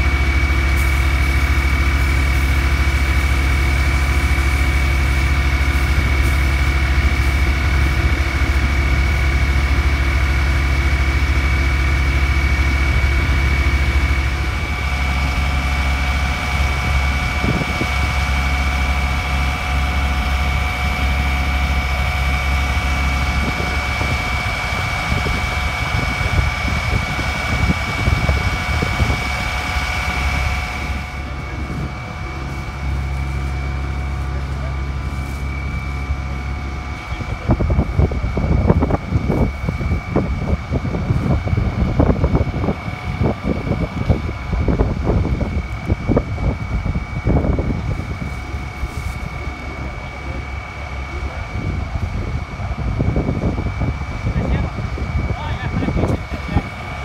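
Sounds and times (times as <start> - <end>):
diesel engine droning: 0.0 - 57.0
pump high whine: 0.0 - 57.0.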